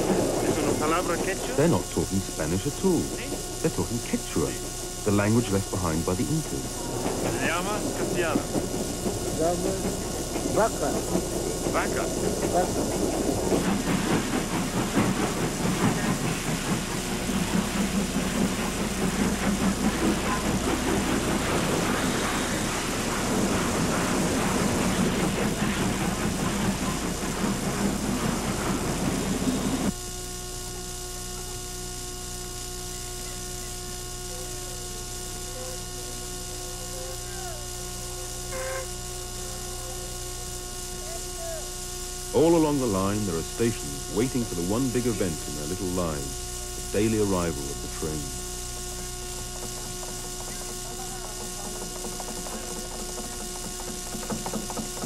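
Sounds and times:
train rattling on rails: 0.0 - 30.0, 42.4 - 55.0
electrical hum: 0.0 - 55.0.

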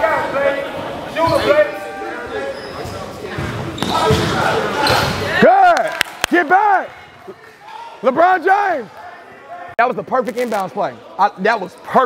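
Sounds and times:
hubbub of voices: 0.0 - 12.0.

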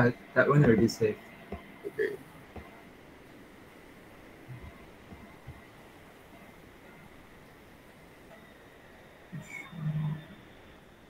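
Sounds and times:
person humming low: 1.8 - 2.2.

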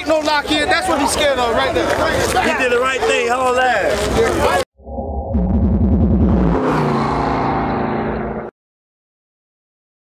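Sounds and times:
synthesized music sting: 4.8 - 8.5.

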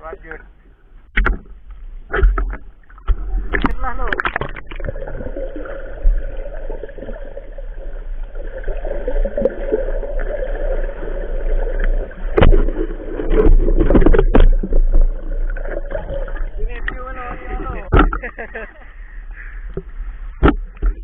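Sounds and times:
loud underwater knocks: 1.1 - 7.1, 12.3 - 14.7, 17.8 - 18.3
muffled underwater water rush: 1.2 - 19.2.

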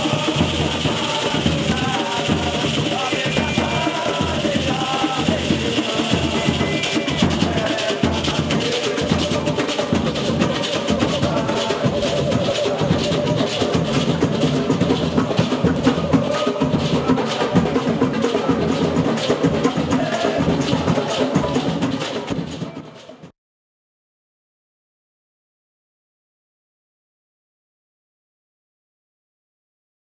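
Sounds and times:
men singing: 0.0 - 23.2
samba percussion group playing: 0.0 - 23.3.

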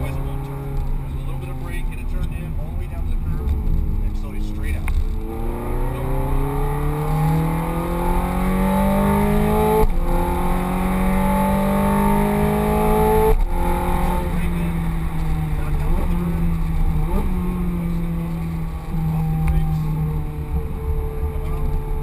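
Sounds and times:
car engine accelerating: 0.0 - 22.0.

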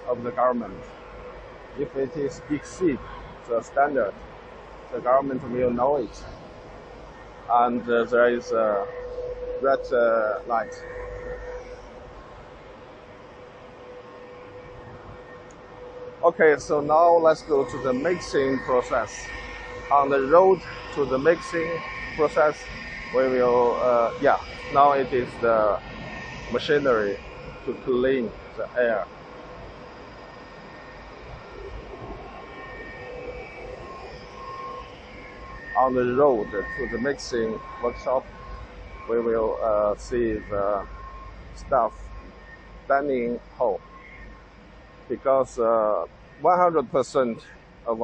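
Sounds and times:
machinery fan drone with constant tone: 0.0 - 48.0.

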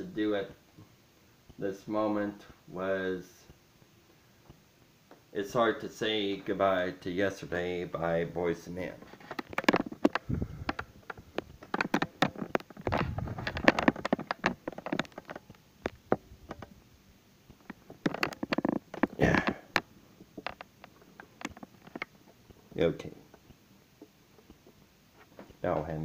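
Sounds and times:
small clicks and knocks: 9.0 - 16.8, 17.5 - 22.7
heavy rumble: 12.9 - 14.1.

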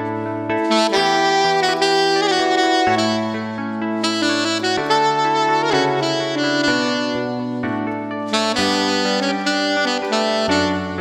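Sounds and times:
saxophone playing slow melody: 0.6 - 11.0.

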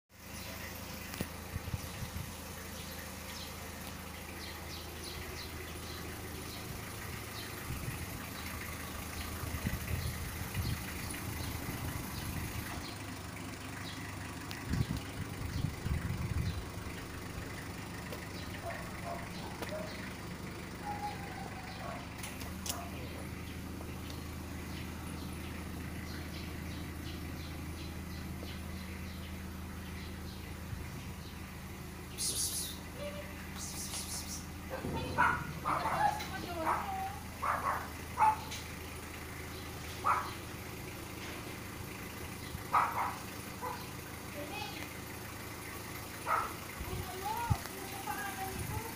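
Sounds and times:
motorcycle engine idling: 0.1 - 48.9.

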